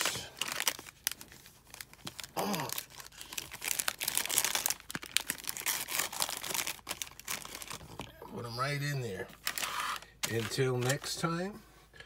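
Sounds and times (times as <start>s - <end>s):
plastic wrappers crinkling: 0.0s - 11.4s.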